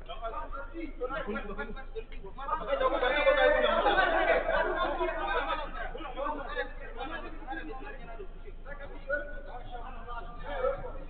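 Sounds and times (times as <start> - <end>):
men talking and calling: 0.0 - 11.0.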